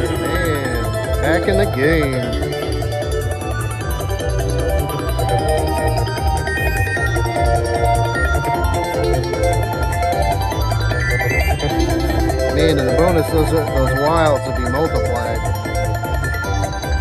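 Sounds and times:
slot machine celebration music: 0.0s - 17.0s
steady low beat: 0.0s - 17.0s.

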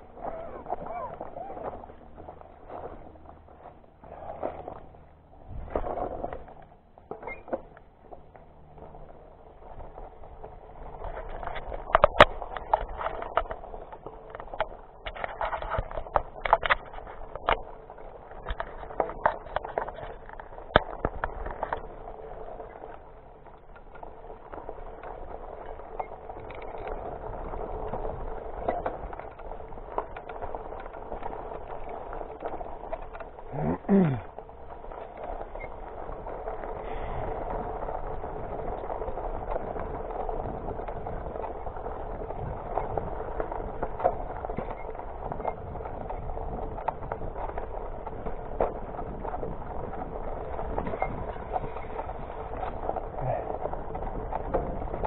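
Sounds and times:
bike rattling: 0.0s - 55.0s
bike tyres rolling over dirt: 0.0s - 55.0s
sharp clicks and knocks: 11.0s - 17.7s.

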